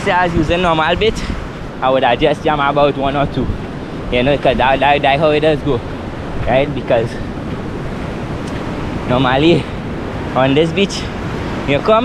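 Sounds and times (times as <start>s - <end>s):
ocean surf washing on shore: 0.0s - 12.0s
wind on microphone: 0.0s - 12.0s.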